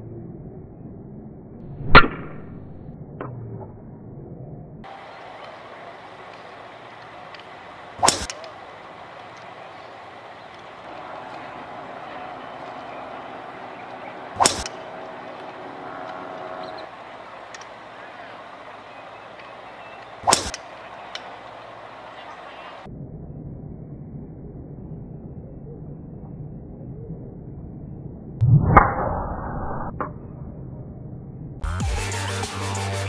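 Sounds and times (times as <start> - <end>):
steady background hum: 0.0 - 22.9
golf driver striking ball: 6.9 - 8.7, 11.8 - 15.5, 20.0 - 20.8.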